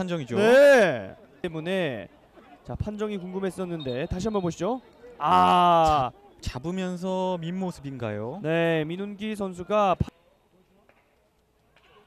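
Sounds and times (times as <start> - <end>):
commentator speaking: 0.0 - 2.1.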